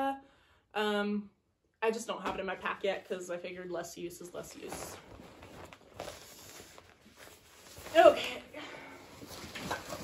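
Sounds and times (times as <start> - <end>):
nylon fabric rustling: 4.2 - 10.0.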